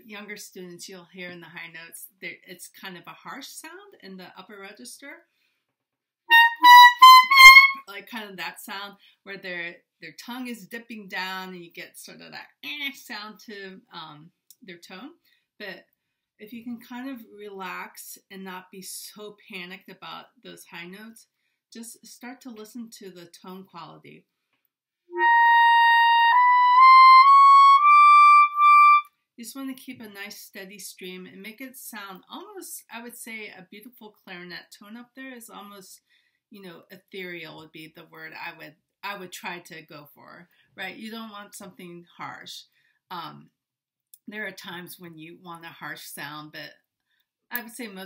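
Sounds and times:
harsh high clarinet notes: 6.3 - 7.8, 25.1 - 29.1.

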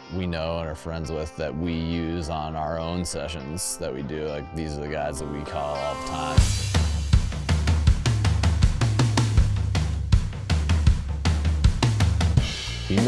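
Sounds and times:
low bass line: 5.2 - 13.0
drum kit groove: 5.5 - 13.0.

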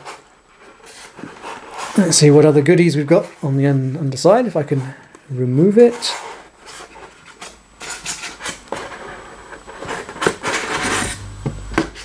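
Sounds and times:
foam rubbing and scraping: 0.0 - 2.4, 5.8 - 12.0.

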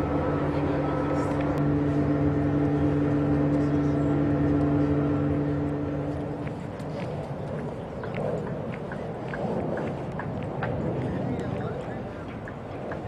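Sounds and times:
steady engine hum: 0.0 - 13.0.

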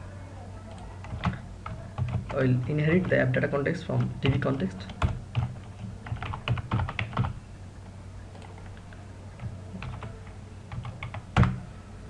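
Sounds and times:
computer keyboard typing: 0.7 - 7.4, 8.3 - 11.6.

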